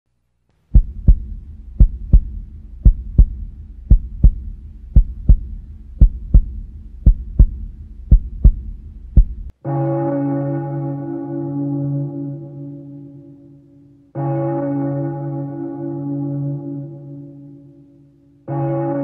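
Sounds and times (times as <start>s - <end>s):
heartbeat thumps: 0.7s - 9.5s.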